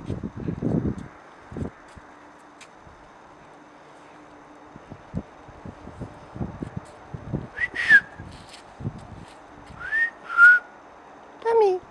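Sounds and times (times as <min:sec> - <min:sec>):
footsteps on paving: 0:00.0 - 0:04.2, 0:06.6 - 0:07.0, 0:08.2 - 0:10.0
person whistling: 0:07.6 - 0:08.3, 0:09.8 - 0:10.7.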